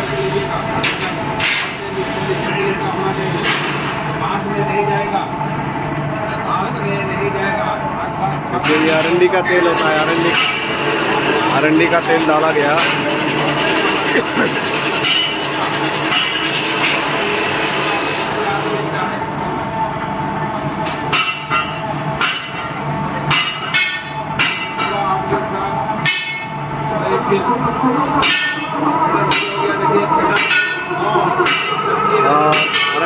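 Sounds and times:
steady machine hum: 0:00.0 - 0:33.0.

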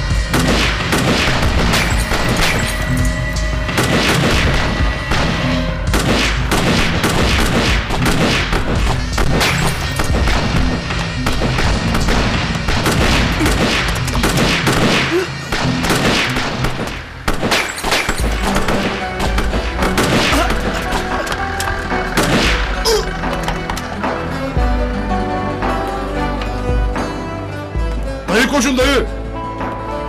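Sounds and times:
dramatic music score: 0:00.0 - 0:30.0
rapid handgun fire: 0:00.3 - 0:02.6, 0:03.8 - 0:20.5.

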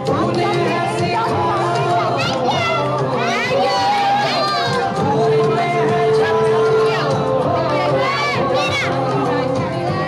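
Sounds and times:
children calling and chattering: 0:00.0 - 0:10.0
music with held notes: 0:00.0 - 0:10.0.

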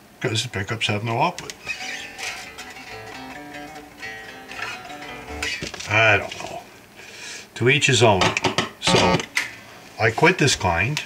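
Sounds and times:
electric bass plucked notes: 0:01.7 - 0:06.3.

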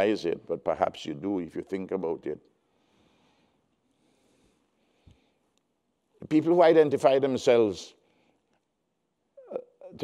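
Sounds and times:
man speaking: 0:00.0 - 0:02.5, 0:06.2 - 0:08.0, 0:09.4 - 0:10.0
man's hiccup-like vocal catch: 0:09.4 - 0:10.0.

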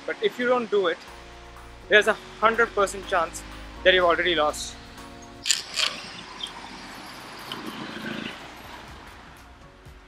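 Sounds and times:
soft background music: 0:00.0 - 0:10.0
street noise: 0:01.1 - 0:10.0.

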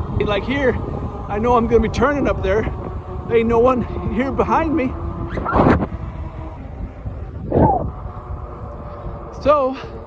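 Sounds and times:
road rumble: 0:00.0 - 0:10.0
wind buffeting microphone: 0:00.0 - 0:10.0.

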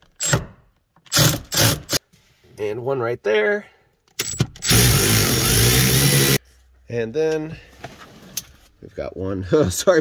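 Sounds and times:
power tool running: 0:04.6 - 0:06.4.

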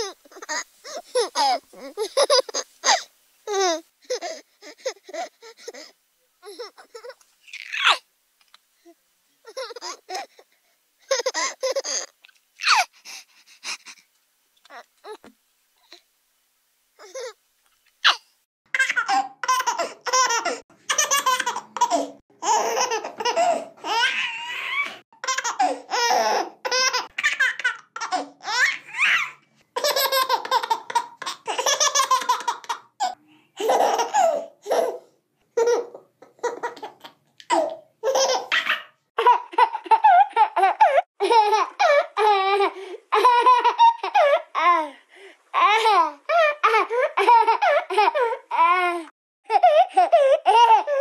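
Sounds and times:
baby laughing: 0:00.0 - 0:08.0, 0:09.4 - 0:10.4, 0:11.0 - 0:12.9, 0:17.0 - 0:17.4, 0:18.0 - 0:18.2, 0:18.8 - 0:35.0, 0:35.6 - 0:44.9, 0:45.6 - 0:48.9, 0:49.5 - 0:51.0.

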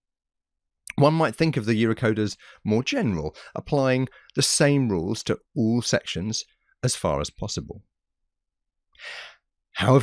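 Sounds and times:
person speaking: 0:00.9 - 0:07.8, 0:09.8 - 0:10.0
person breathing in: 0:08.9 - 0:09.5.

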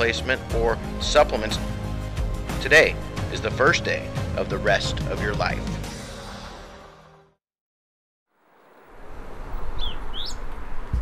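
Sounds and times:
rushing outdoor background: 0:00.0 - 0:07.2
bird chirps: 0:09.6 - 0:10.5.

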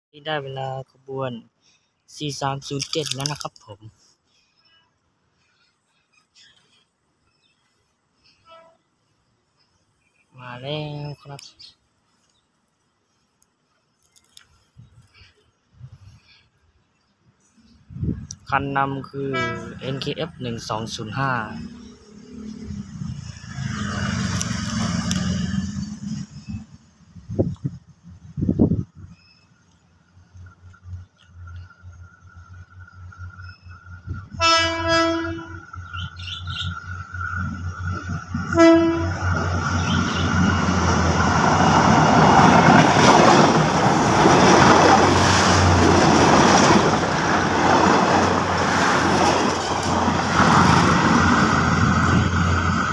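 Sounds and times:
train horn: 0:08.3 - 0:08.8, 0:19.3 - 0:19.8, 0:34.3 - 0:35.7, 0:38.4 - 0:39.4
train engine and wheels on rails: 0:17.5 - 0:52.9.

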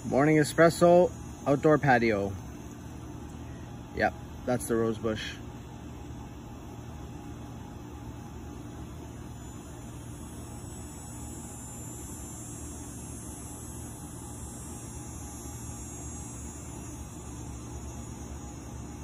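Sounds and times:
even hiss: 0:00.0 - 0:05.5
constant low hum: 0:00.0 - 0:19.0.

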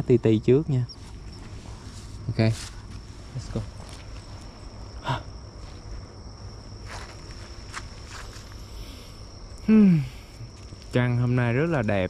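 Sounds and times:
insect trill: 0:00.0 - 0:12.0.

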